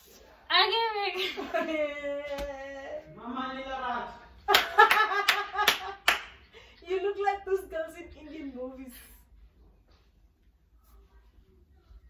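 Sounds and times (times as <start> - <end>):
hands clapping: 4.5 - 6.4
woman's voice: 6.8 - 9.3.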